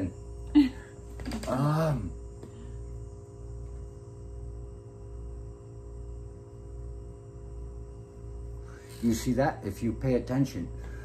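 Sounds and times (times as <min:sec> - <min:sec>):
faint buzzing whine: 0:00.0 - 0:11.0
low electrical hum: 0:00.0 - 0:11.0.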